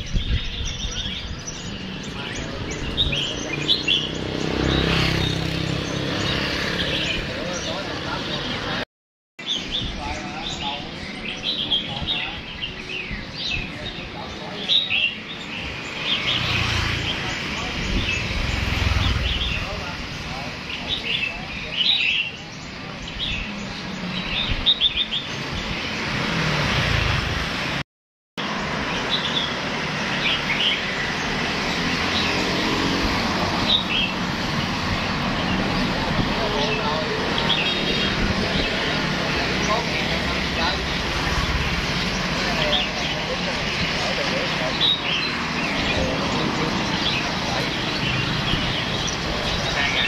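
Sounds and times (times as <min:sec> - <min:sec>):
songbirds chirping: 0:00.0 - 0:08.8, 0:09.4 - 0:27.8, 0:28.4 - 0:50.0
street traffic noise: 0:00.0 - 0:27.8, 0:28.4 - 0:50.0
people talking: 0:00.8 - 0:04.0, 0:07.0 - 0:08.8, 0:09.8 - 0:15.3, 0:17.0 - 0:23.7, 0:35.7 - 0:50.0.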